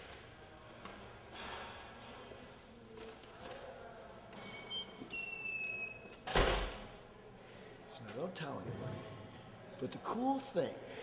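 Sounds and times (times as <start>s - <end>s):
heavy door shutting with a thud: 6.2s - 6.9s.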